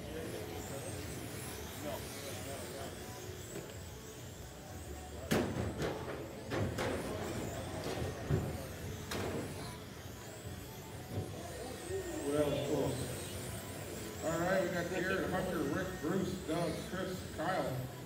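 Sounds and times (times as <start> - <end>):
faint voices: 0.0 - 18.0
radio-controlled cars racing: 0.0 - 18.0
steady background hum: 0.0 - 18.0.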